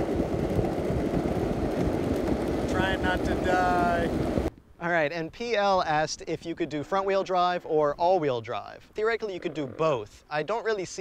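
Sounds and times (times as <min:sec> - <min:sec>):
longboard wheels rolling on asphalt: 0:00.0 - 0:04.5
wind buffeting microphone: 0:00.0 - 0:04.5.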